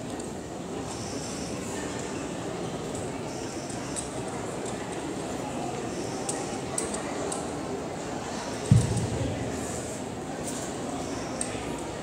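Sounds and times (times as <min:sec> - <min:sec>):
murmur of spectators: 0:00.0 - 0:12.0.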